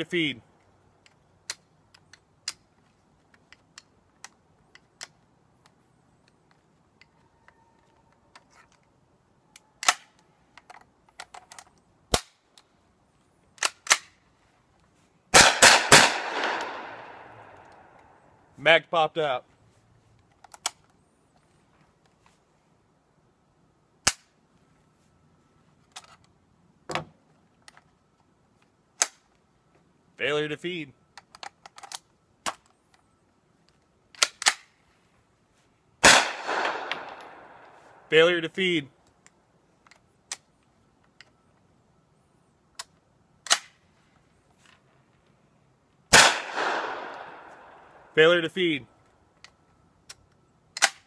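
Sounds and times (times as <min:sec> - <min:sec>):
metallic clicks of gun action: 0:01.0 - 0:07.2, 0:08.1 - 0:12.7, 0:13.5 - 0:14.2, 0:20.2 - 0:21.0, 0:31.1 - 0:33.0, 0:33.6 - 0:34.8
gunshot crack: 0:15.4 - 0:17.3, 0:36.0 - 0:37.4, 0:46.1 - 0:47.5.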